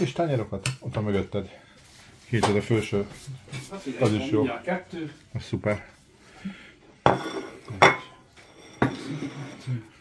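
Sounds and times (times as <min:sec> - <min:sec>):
ceramic plates clattering: 0:07.0 - 0:09.7.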